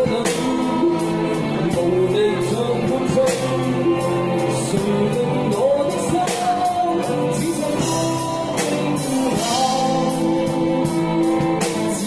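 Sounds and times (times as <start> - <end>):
acoustic guitar: 0.0 - 12.0
bass guitar: 0.0 - 12.0
electric guitar: 0.0 - 12.0
man singing: 0.0 - 12.0.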